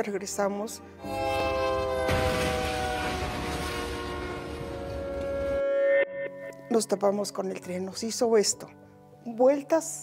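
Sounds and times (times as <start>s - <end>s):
train collision rumble: 1.1s - 5.6s.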